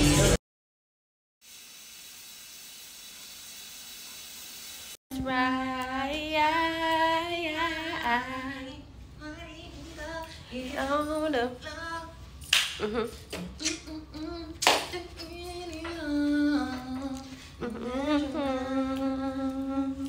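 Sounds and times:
woman humming a tune: 0:12.8 - 0:14.5, 0:15.3 - 0:20.0
sharp smacks: 0:14.6 - 0:15.0.

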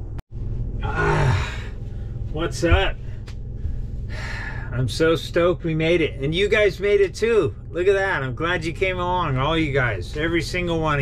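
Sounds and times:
steady low hum: 0:00.0 - 0:11.0
man sighing: 0:00.8 - 0:01.7.

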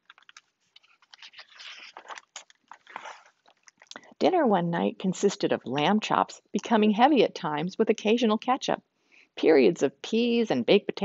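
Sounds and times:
book pages rustling: 0:00.0 - 0:03.8.

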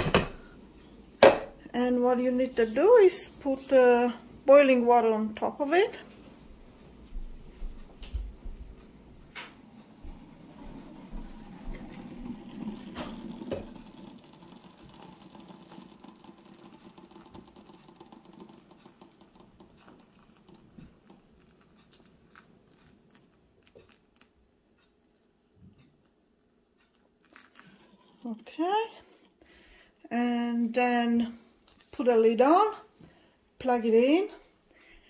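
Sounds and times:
water pouring from kettle: 0:10.4 - 0:24.3, 0:27.2 - 0:28.5.

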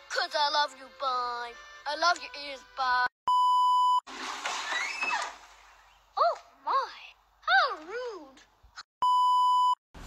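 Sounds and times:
censor beep tone: 0:03.3 - 0:04.0, 0:09.0 - 0:09.8.

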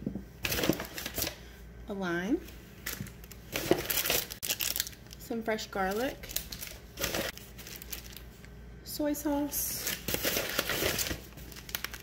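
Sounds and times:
plastic bag crinkling: 0:02.8 - 0:08.4, 0:09.8 - 0:12.0.

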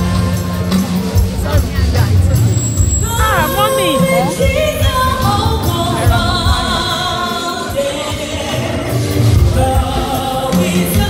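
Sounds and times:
drum beat: 0:00.9 - 0:06.9
choir singing: 0:03.0 - 0:04.6.

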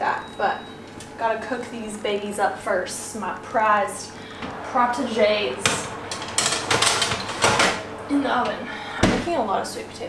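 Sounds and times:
metal baking tray scraping and rattling: 0:05.0 - 0:08.6.

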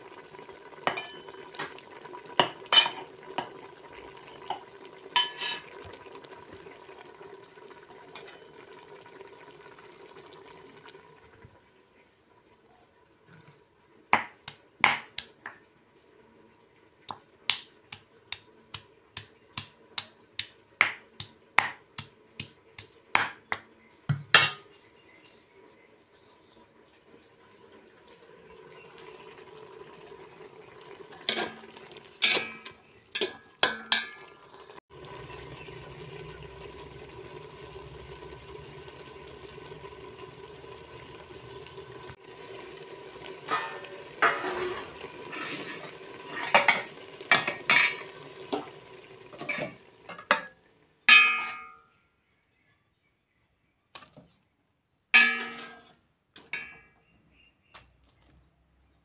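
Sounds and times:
metal spoon scraping metal pot: 0:32.2 - 0:34.2, 0:43.5 - 0:46.9, 0:55.2 - 0:56.0
gravy hissing in pot: 0:34.4 - 0:50.0.

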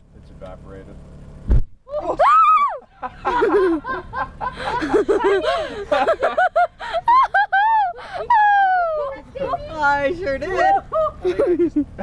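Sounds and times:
person screaming: 0:01.9 - 0:02.8
people laughing: 0:02.9 - 0:09.6, 0:10.2 - 0:12.0.

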